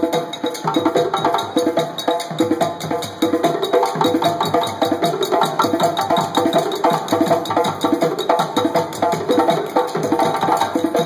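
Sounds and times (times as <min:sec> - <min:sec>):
barrel drums drumming: 0:00.0 - 0:11.0
drum bell ringing: 0:00.0 - 0:11.0.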